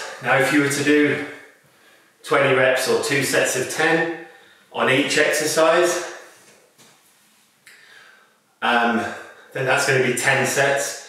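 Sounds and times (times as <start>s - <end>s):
person breathing in: 7.7s - 9.5s.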